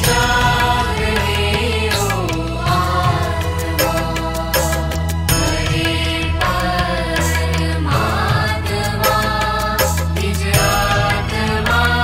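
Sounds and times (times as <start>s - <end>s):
devotional music with drone: 0.0s - 12.0s.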